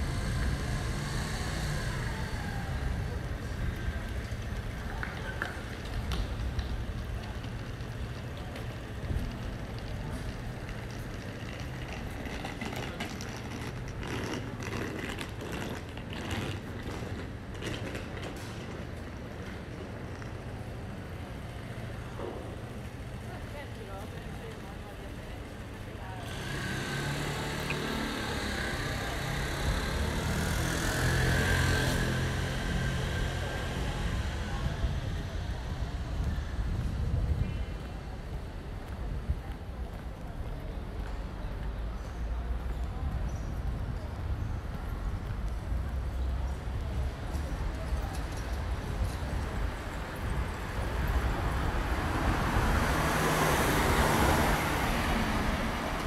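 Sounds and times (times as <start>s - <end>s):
passers-by talking: 0.0s - 56.0s
traffic rumble: 0.0s - 56.0s.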